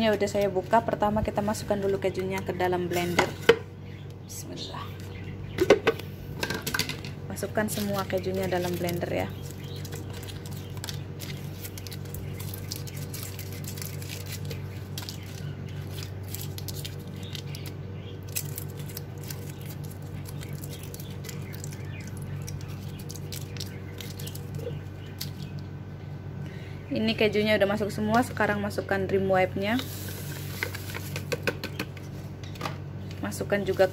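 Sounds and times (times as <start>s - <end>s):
steady low hum: 0.0s - 33.9s
foil wrappers crinkling: 7.4s - 25.6s.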